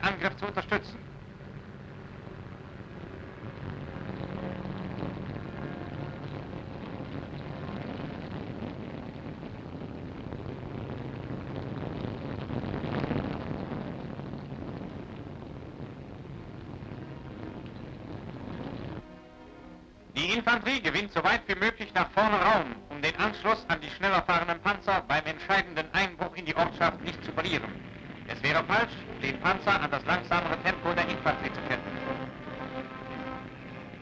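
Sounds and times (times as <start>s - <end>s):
military vehicle engine rumbling: 0.0s - 12.8s, 13.8s - 34.0s
film soundtrack hiss: 0.0s - 34.0s.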